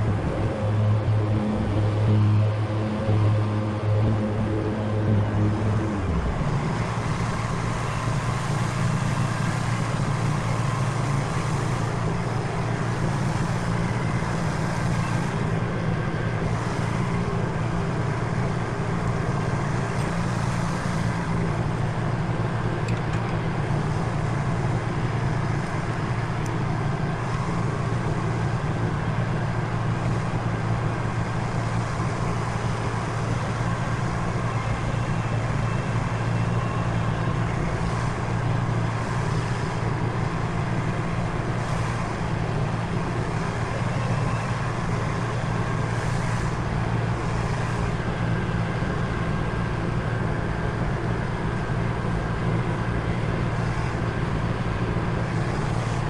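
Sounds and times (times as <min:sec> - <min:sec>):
riding mower mowing grass: 0:00.0 - 0:56.0.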